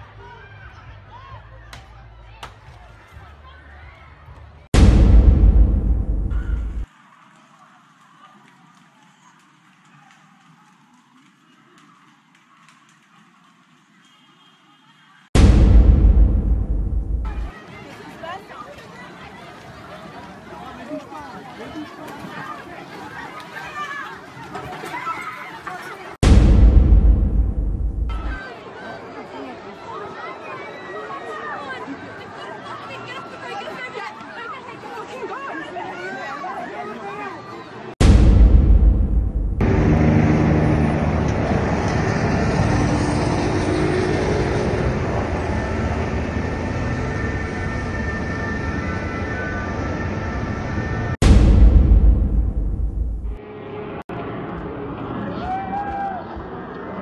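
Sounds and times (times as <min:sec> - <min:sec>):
crowd talking and calling out: 0:00.0 - 0:43.7, 0:44.5 - 0:57.0.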